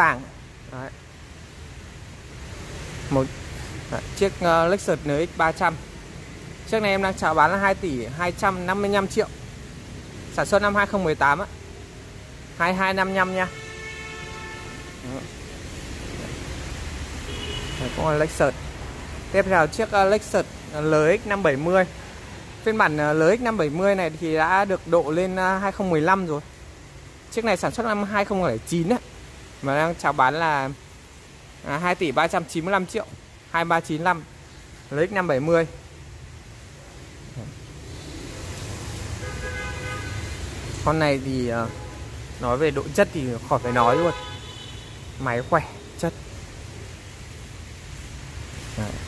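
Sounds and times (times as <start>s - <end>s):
hiss: 36.9s - 39.2s, 46.1s - 49.0s.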